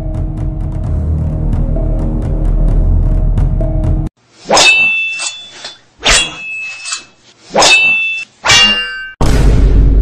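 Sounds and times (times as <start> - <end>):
tense background music: 0.0 - 4.1
metallic clang with ringing tone: 4.6 - 9.2.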